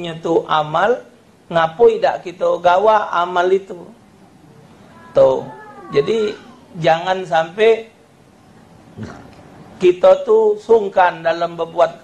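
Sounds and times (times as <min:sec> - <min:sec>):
man speaking into a microphone: 0:00.0 - 0:04.0, 0:05.2 - 0:08.0, 0:09.8 - 0:12.0
low room noise: 0:00.0 - 0:12.0.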